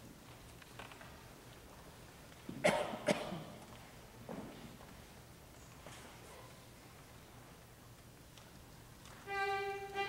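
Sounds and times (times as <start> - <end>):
person coughing: 2.6 - 3.6.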